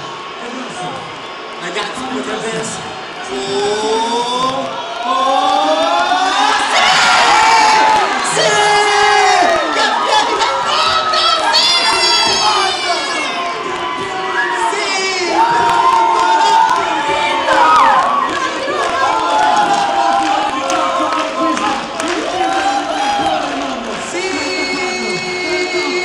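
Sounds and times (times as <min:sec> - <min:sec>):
high voices shouting and cheering: 0:00.0 - 0:26.0.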